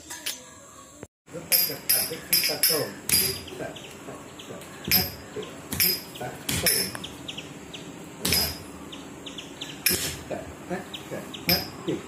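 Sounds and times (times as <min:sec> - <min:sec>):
high bird chirps: 0:02.1 - 0:10.1.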